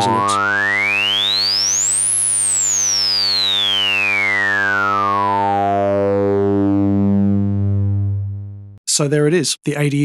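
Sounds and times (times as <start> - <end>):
filtered sawtooth buzz: 0.0 - 8.8.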